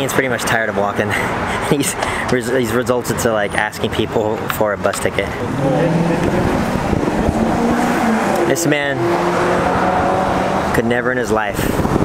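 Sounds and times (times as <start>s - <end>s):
tyre and road noise: 0.0s - 12.0s
vehicle engine accelerating: 5.4s - 10.8s.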